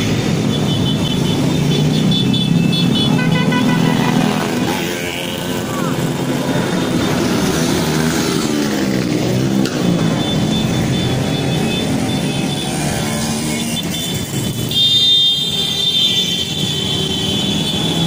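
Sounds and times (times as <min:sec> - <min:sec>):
small motorcycles passing: 0:00.0 - 0:14.7
horns tooting: 0:00.0 - 0:18.0.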